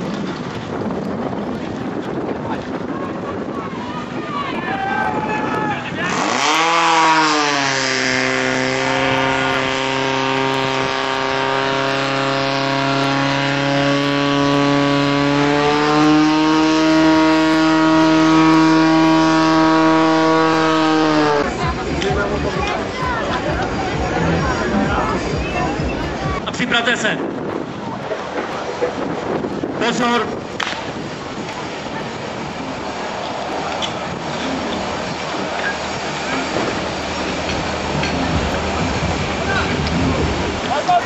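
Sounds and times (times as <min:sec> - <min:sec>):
pump engine revving: 0:05.9 - 0:26.4, 0:27.6 - 0:41.0.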